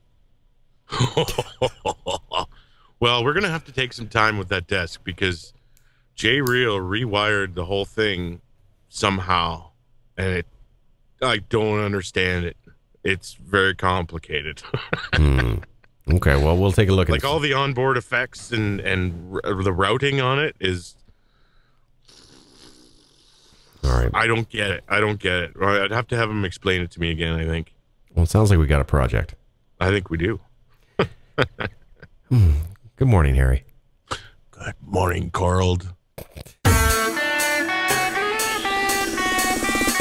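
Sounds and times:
man laughing: 0.9s - 2.6s, 14.6s - 17.4s, 31.0s - 32.8s.

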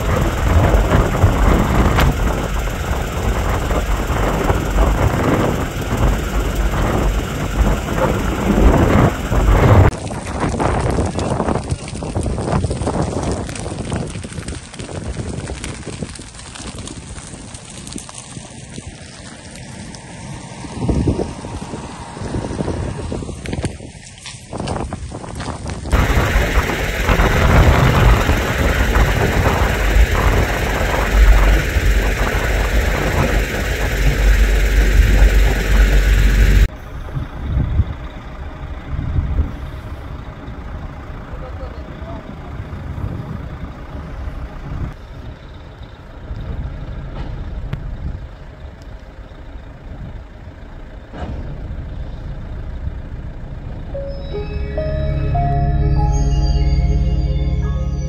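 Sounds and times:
loud rushing with deep rumble: 0.0s - 10.0s, 25.9s - 37.8s
vehicle engines idling: 0.0s - 10.3s, 25.8s - 58.0s.

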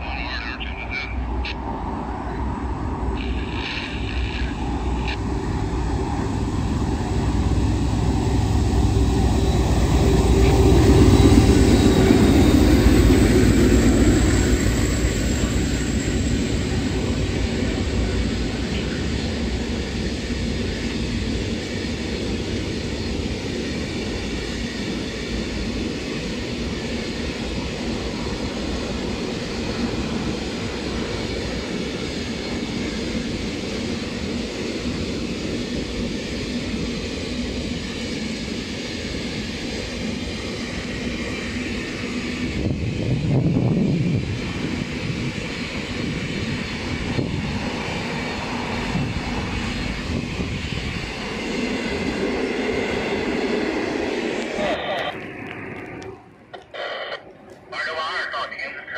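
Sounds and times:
train wheels rumbling and clattering: 1.3s - 56.8s.

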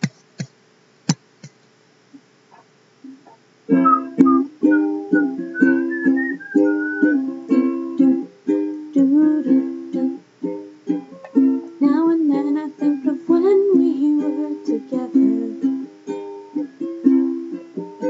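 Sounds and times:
faint wavering high melody: 3.7s - 8.1s
acoustic guitar strumming chords: 3.7s - 18.0s.

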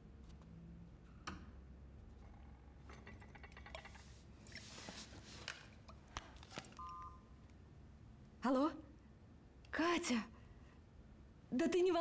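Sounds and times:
two-tone dialing beep: 6.8s - 7.3s.

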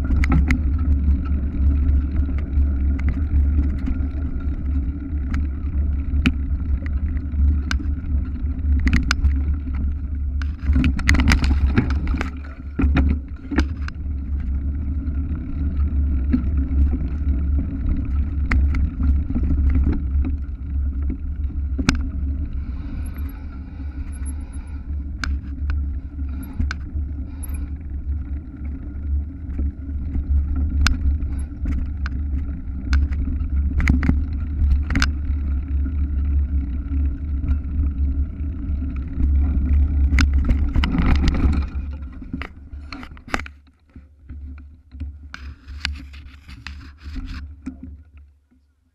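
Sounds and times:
bike knocks and rattles: 0.0s - 23.4s, 28.5s - 37.9s, 38.8s - 43.6s.

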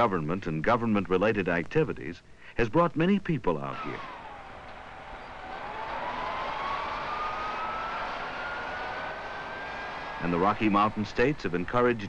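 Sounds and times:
digging machine engine whining: 3.7s - 12.0s.

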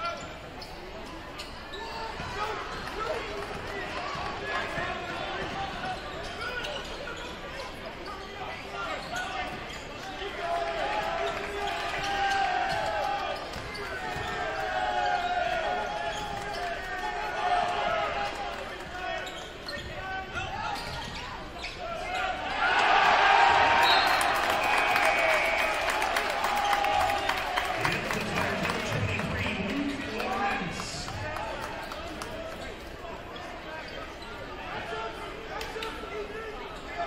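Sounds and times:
crowd of voices: 0.0s - 37.0s.

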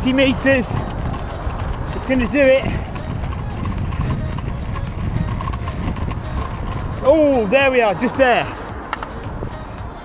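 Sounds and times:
measuring wheel clicking: 0.0s - 7.2s
wind buffeting microphone: 0.0s - 10.0s.

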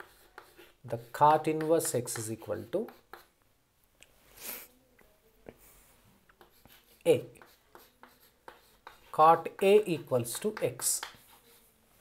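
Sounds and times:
chalk tapping and scratching: 0.0s - 3.4s, 5.5s - 12.0s.

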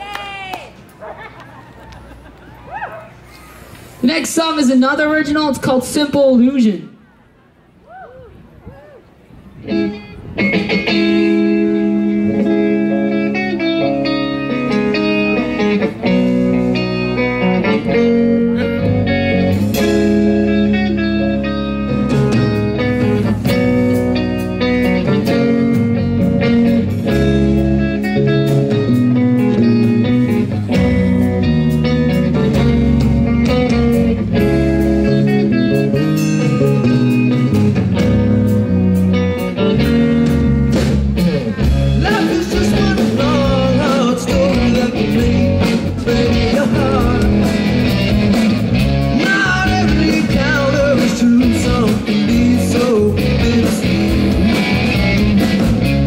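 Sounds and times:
bass guitar: 7.9s - 56.0s
drums: 7.9s - 56.0s
electric guitars: 8.1s - 56.0s.

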